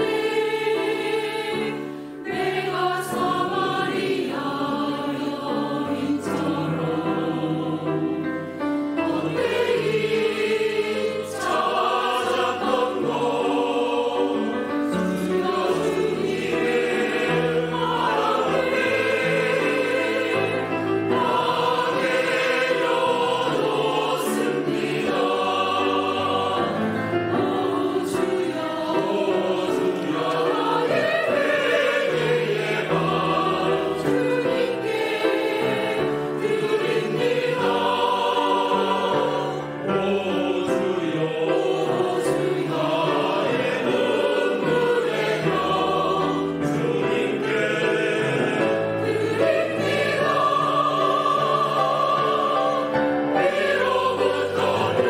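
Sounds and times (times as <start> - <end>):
mixed choir singing in harmony: 0.0 - 55.0.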